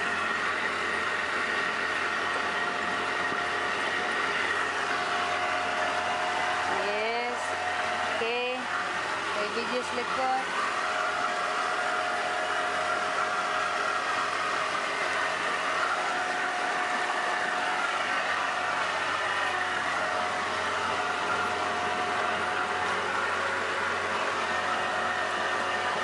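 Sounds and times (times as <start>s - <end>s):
boat motor whining: 0.0s - 26.0s
rushing water: 0.0s - 26.0s
wind: 0.0s - 26.0s.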